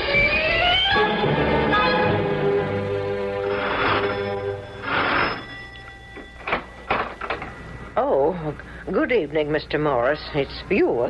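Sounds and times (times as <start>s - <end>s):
radio drama music bridge: 0.0s - 11.0s.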